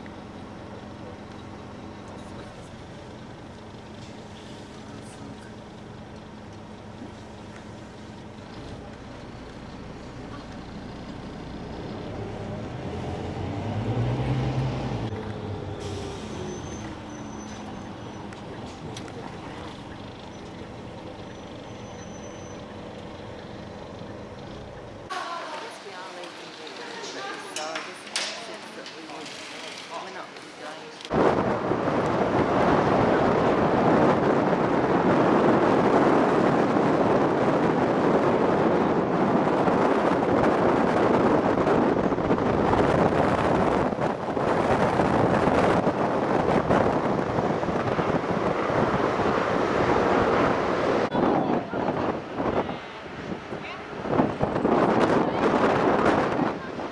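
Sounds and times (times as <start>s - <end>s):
vehicle engine and road noise: 0.0s - 56.9s
wind buffeting microphone: 31.1s - 56.9s.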